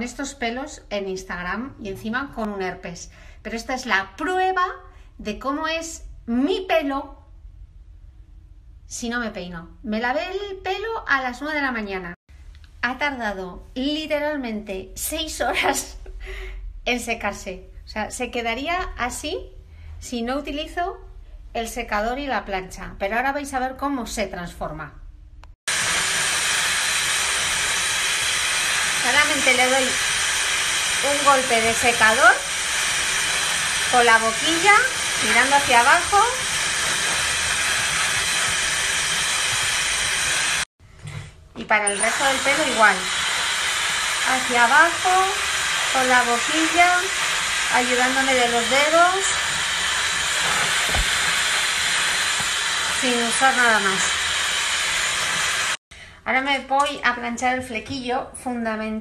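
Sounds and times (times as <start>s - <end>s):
hair dryer blowing: 25.7s - 40.7s, 41.8s - 55.8s.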